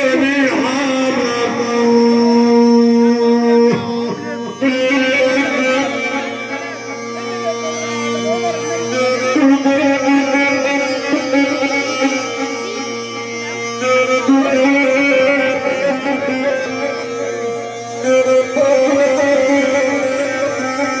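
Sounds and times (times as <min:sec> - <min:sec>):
folk wind pipe: 0:00.0 - 0:21.0.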